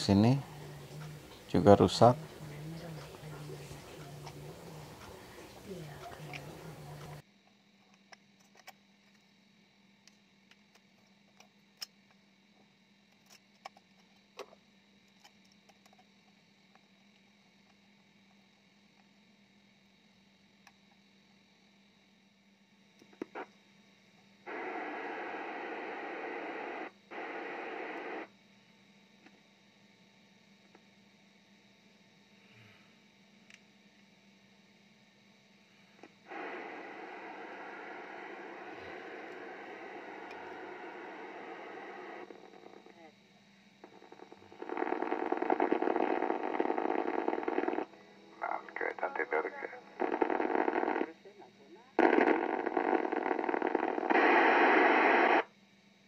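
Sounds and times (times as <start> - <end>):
radio static hiss: 0.0 - 7.2, 23.1 - 23.6, 24.4 - 28.4, 35.8 - 55.6
radio voices: 0.0 - 7.2, 24.5 - 28.3, 36.3 - 43.1, 43.8 - 55.4.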